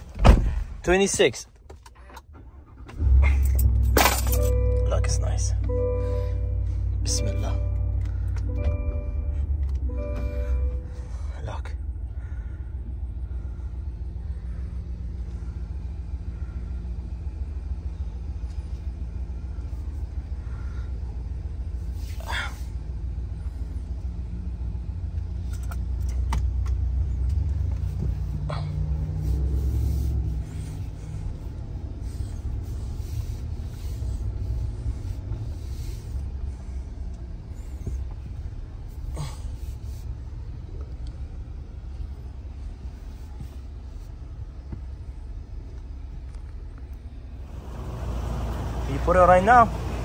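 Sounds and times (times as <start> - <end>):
car cabin engine rumble: 0.0 - 50.0.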